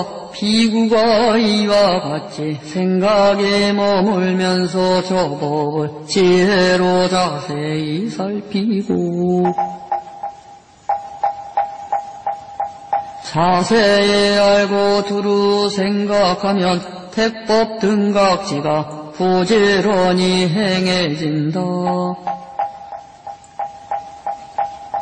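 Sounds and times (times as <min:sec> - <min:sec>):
chant music: 0:00.0 - 0:25.0
steady held tone: 0:08.6 - 0:15.3, 0:21.8 - 0:25.0.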